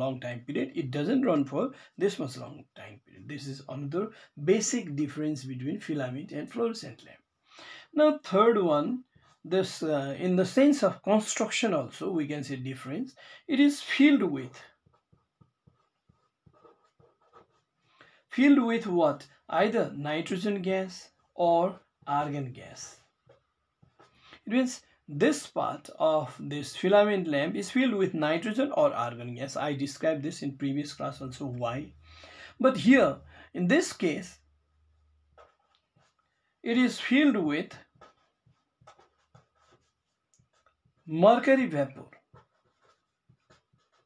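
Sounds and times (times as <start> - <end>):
pen scratching on paper: 9.0 - 9.8, 13.8 - 17.9, 22.7 - 24.2, 33.8 - 44.0.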